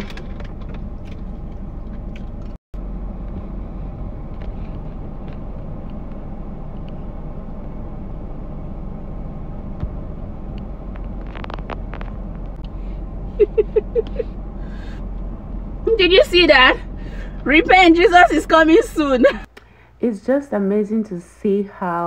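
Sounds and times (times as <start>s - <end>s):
car engine and traffic rumble: 0.0s - 20.0s.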